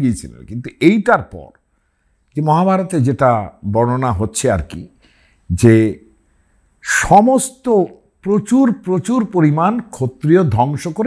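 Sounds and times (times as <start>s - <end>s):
man speaking: 0.0s - 1.6s, 2.3s - 6.1s, 6.8s - 11.0s.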